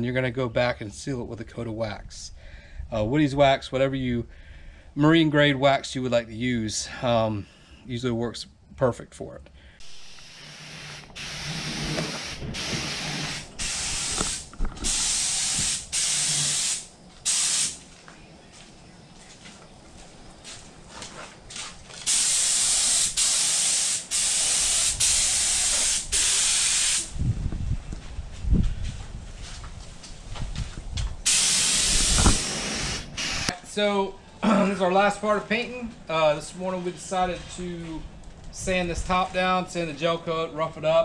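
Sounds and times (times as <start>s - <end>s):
spray gun hissing: 9.8s - 17.8s, 22.0s - 27.2s, 31.2s - 33.6s.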